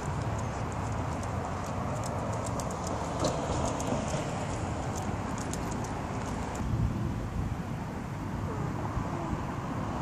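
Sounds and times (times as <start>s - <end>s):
light ticks and clicks: 0.0s - 6.6s
distant traffic rumble: 0.0s - 10.0s.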